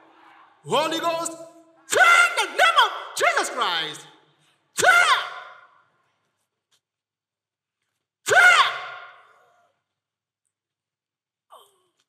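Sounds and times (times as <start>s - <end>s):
man shouting with echo: 0.9s - 4.0s, 4.8s - 5.7s, 8.3s - 9.2s.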